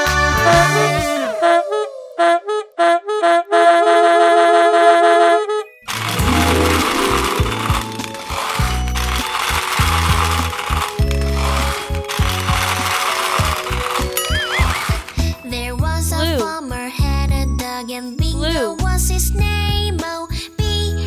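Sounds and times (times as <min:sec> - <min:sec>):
brass-like chord: 0:05.9 - 0:08.6
children's music with bass line: 0:05.9 - 0:10.3, 0:14.6 - 0:21.0
plastic balls pouring and tumbling: 0:05.9 - 0:15.4.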